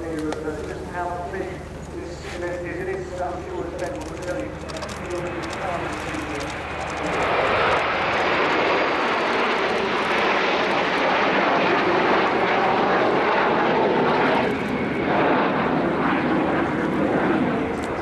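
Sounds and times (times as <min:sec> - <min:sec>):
jet aircraft flying overhead: 0:00.0 - 0:18.0.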